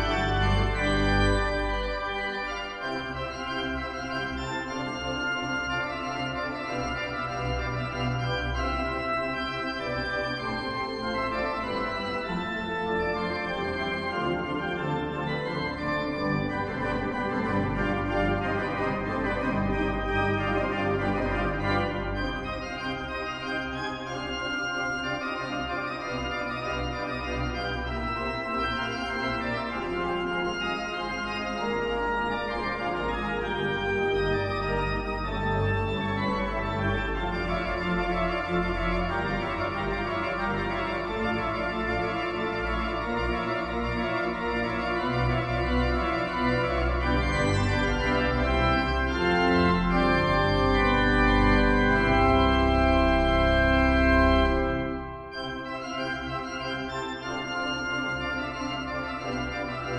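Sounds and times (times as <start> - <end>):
pipe organ chords: 0.0 - 59.9.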